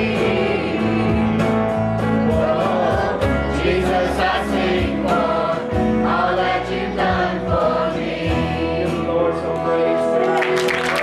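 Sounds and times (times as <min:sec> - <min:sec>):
man singing lead: 0:00.0 - 0:05.2, 0:08.3 - 0:10.4
women singing along: 0:00.0 - 0:09.2
steady drum beat: 0:00.0 - 0:09.3
strummed acoustic guitar: 0:00.0 - 0:10.2
bass guitar: 0:00.0 - 0:11.0.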